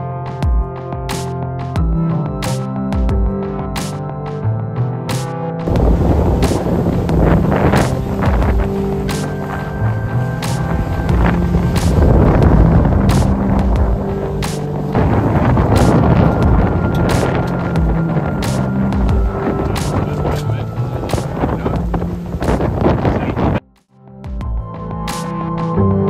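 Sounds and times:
background music with a beat: 0.0s - 22.9s, 23.7s - 26.0s
water rushing past a boat: 5.6s - 23.6s
wind: 5.6s - 23.6s.

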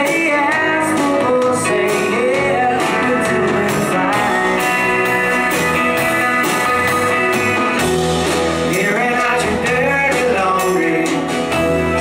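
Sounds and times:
man singing: 0.0s - 5.6s, 8.5s - 12.0s
acoustic guitar strumming: 0.0s - 12.0s
bass guitar: 0.0s - 12.0s
electric guitar: 0.0s - 12.0s.

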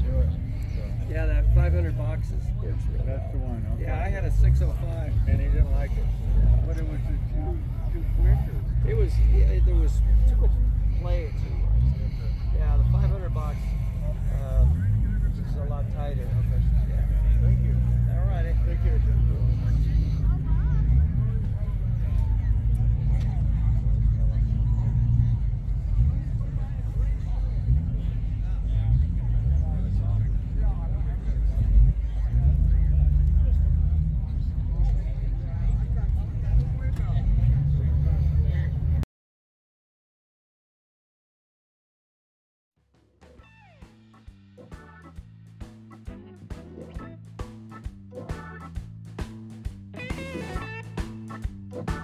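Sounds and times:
car engine idling: 0.0s - 39.0s, 43.6s - 52.0s
people chattering: 0.0s - 39.0s, 43.4s - 52.0s.

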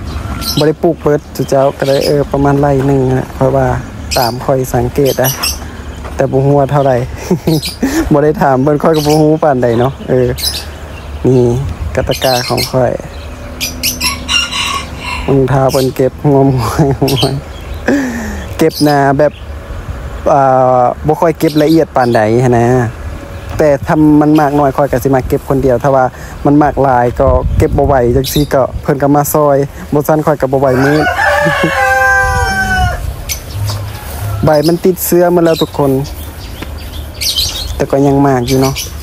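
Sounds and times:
steady low hum: 0.0s - 31.6s
rooster crowing: 13.8s - 15.5s, 30.6s - 34.7s.

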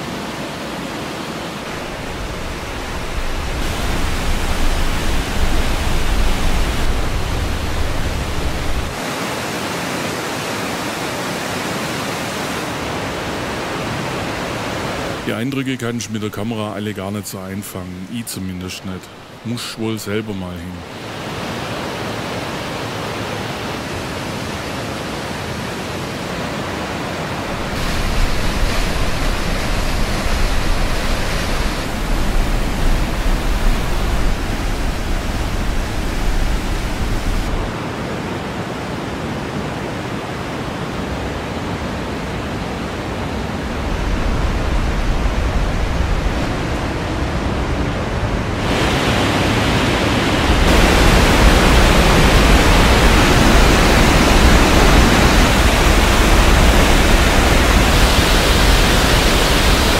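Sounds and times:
meltwater torrent rushing: 0.0s - 59.9s.

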